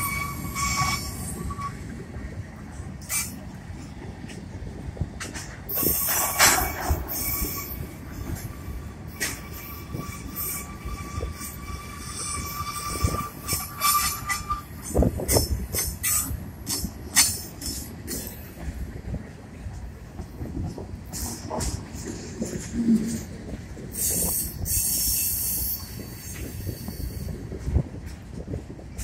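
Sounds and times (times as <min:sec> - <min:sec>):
wheel flanges squealing: 0:00.0 - 0:01.8, 0:05.7 - 0:18.4, 0:23.9 - 0:27.6
train rumble: 0:00.0 - 0:29.0
wheels clicking and clanking on rails: 0:00.0 - 0:29.0.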